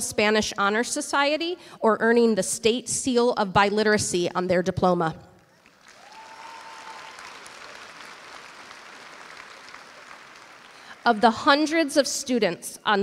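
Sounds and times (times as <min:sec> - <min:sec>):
audience applause: 0:05.6 - 0:11.3.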